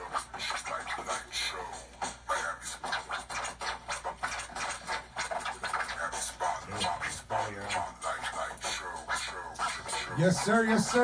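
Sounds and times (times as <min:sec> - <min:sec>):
record scratching: 0:00.0 - 0:11.0.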